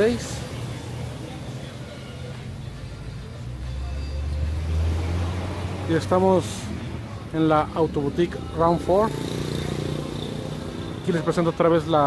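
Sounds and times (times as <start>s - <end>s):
passing motor vehicle rumble: 0.0s - 11.9s.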